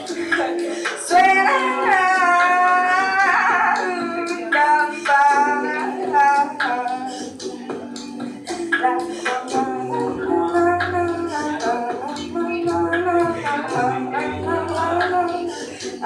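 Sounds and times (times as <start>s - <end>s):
repeating percussive beat: 0.0s - 16.0s
woman singing: 0.0s - 16.0s
sustained low tones: 12.2s - 15.5s.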